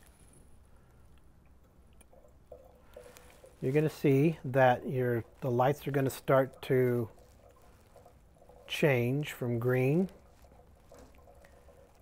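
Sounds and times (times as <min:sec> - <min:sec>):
faint steady hum: 0:00.0 - 0:12.0
liquid trickling through funnel: 0:00.0 - 0:12.0.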